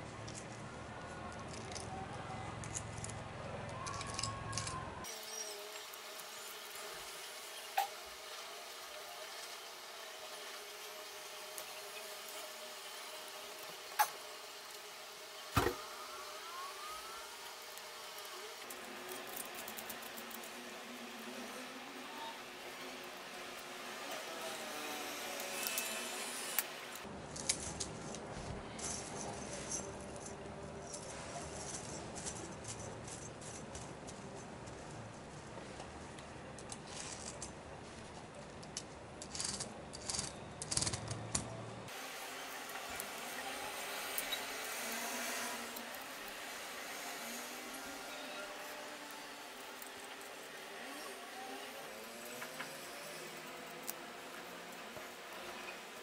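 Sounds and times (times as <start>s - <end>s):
chainmail rings clinking: 28.7s - 34.5s.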